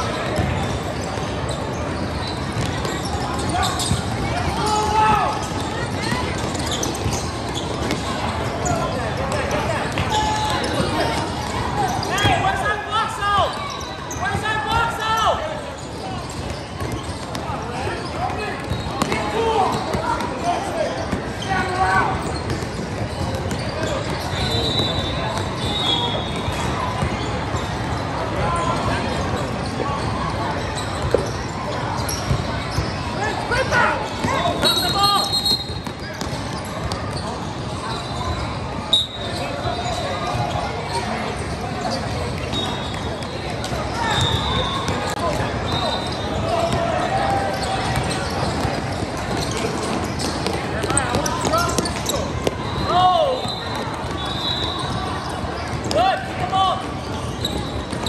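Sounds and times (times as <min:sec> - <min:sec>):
people shouting and chattering: 0:00.0 - 0:58.0
basketball bouncing on court: 0:00.2 - 0:01.3, 0:02.2 - 0:04.3, 0:16.2 - 0:17.5, 0:18.3 - 0:20.3, 0:22.2 - 0:24.8, 0:35.6 - 0:37.2, 0:47.6 - 0:52.8.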